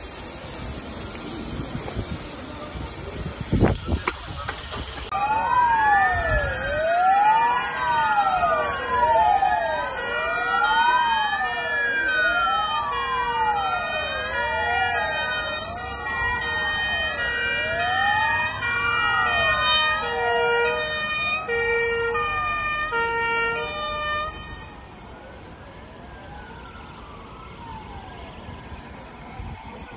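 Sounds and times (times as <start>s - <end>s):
emergency sirens wailing: 0.0s - 29.9s
siren with stepped tones: 5.1s - 29.9s.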